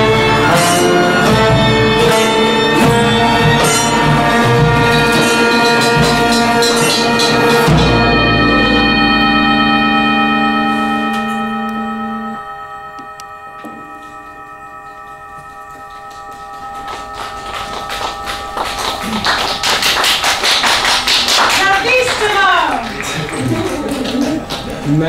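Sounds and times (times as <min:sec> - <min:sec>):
folk ensemble held chord: 0:00.0 - 0:25.0
audience applause: 0:16.0 - 0:25.0
sliding cheer: 0:16.4 - 0:24.8.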